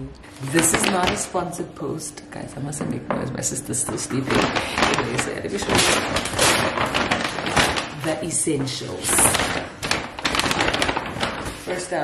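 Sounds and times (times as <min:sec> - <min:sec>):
paper bags rustling and crinkling: 0:00.2 - 0:01.5, 0:03.7 - 0:12.0.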